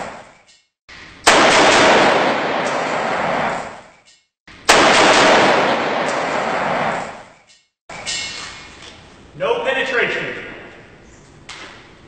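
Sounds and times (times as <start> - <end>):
rifle fire echoing: 1.2 - 3.9, 4.7 - 7.3.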